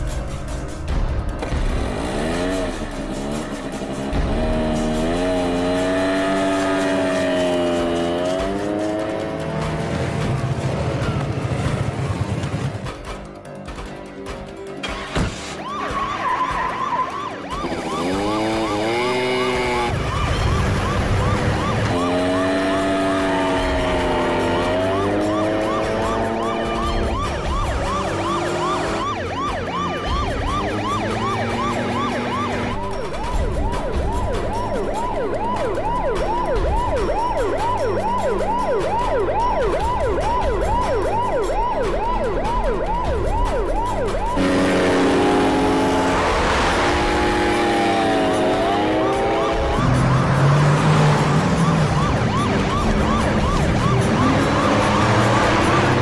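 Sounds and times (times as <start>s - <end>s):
soundtrack with low pulsing beat: 0.0s - 56.0s
police siren yelping: 4.1s - 9.8s, 14.8s - 56.0s.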